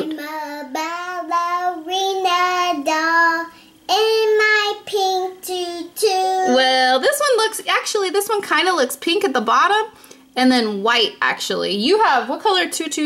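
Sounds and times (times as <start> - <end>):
girl singing: 0.0 - 6.7.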